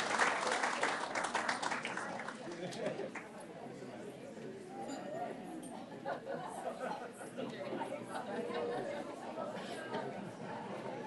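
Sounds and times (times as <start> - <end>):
crowd chatter in large hall: 0.0 - 11.0.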